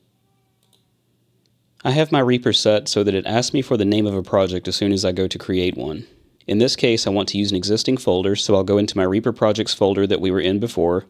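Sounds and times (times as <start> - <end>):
computer mouse clicks: 0.6 - 1.6
man's voice: 1.8 - 11.0.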